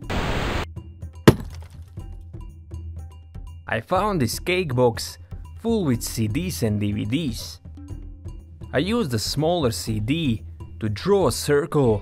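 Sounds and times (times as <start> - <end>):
axe striking concrete wall: 1.3 - 1.8.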